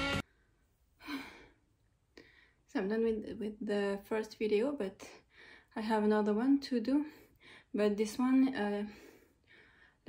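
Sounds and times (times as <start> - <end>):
background music: 0.0 - 0.2
woman sighing breathily: 1.0 - 1.6.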